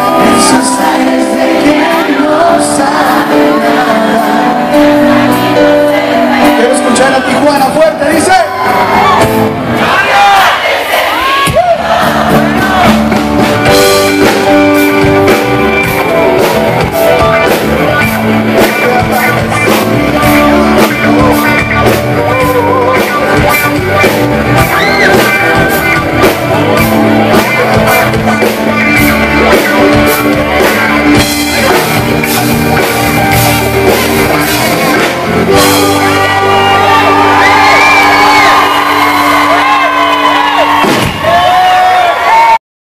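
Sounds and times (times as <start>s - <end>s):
crowd whooping and shouting: 0.0s - 2.3s, 3.3s - 19.8s, 20.9s - 42.6s
live band playing pop-rock: 0.0s - 42.6s
steady drum beat: 11.3s - 39.0s.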